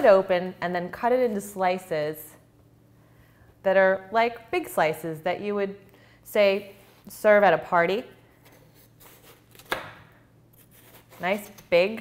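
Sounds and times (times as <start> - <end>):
knife slicing watermelon: 10.6 - 11.7.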